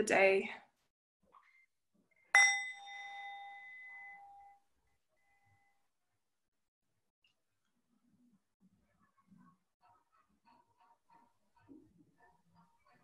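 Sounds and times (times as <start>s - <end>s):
meditation bell ringing: 2.4s - 4.6s.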